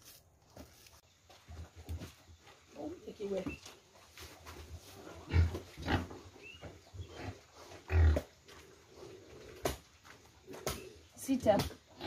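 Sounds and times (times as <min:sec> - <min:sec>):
pigs grunting: 0:05.0 - 0:06.3, 0:07.0 - 0:09.8.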